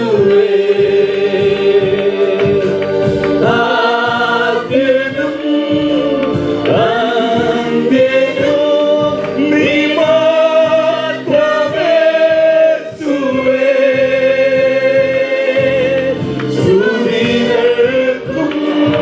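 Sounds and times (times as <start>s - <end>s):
accompaniment beat: 0.0s - 19.0s
group singing worship song: 0.0s - 19.0s.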